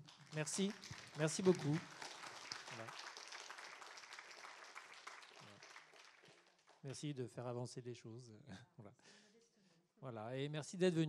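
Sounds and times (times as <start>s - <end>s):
audience applause: 0.0s - 7.1s.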